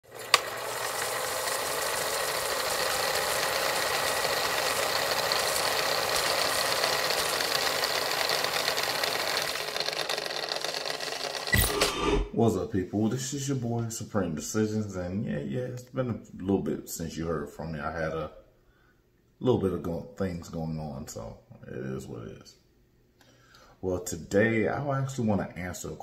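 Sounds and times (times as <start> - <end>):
film projector whirring clatter: 0.0 - 12.0
sharp click: 11.5 - 12.3.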